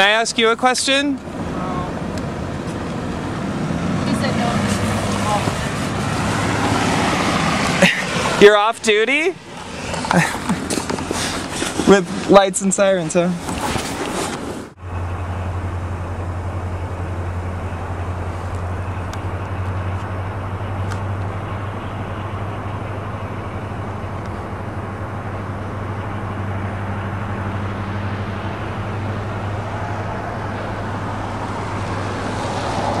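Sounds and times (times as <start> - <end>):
constant rushing noise: 0.0 - 33.0.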